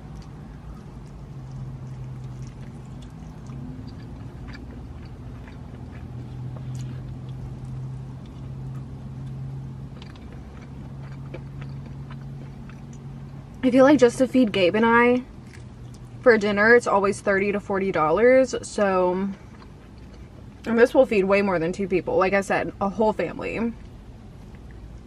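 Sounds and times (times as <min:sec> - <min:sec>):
person chewing crunchy food: 0:00.0 - 0:13.6, 0:15.3 - 0:16.2, 0:19.3 - 0:20.7
low hum inside car: 0:00.0 - 0:25.0.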